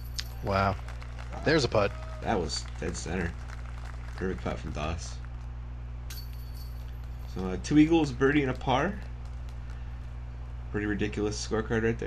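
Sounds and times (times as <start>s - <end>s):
steady low hum: 0.0s - 12.0s
disc golf basket chains clinking: 6.1s - 7.5s.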